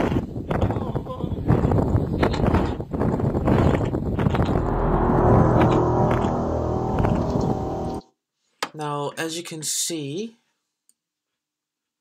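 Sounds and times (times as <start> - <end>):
rough noise: 4.2 - 8.0
eerie layered drone: 4.3 - 8.0.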